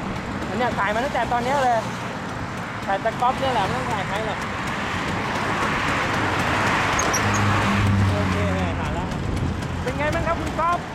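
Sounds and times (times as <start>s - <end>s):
road traffic going by: 0.0s - 10.9s
vehicle engine hum: 0.0s - 10.9s.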